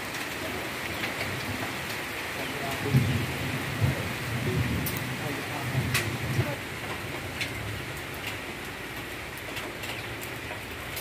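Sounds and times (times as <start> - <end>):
heavy rain: 0.0 - 11.0.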